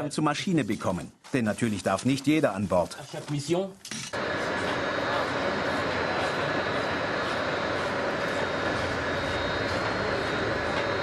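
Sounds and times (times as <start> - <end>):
faint high whine: 4.2 - 11.0.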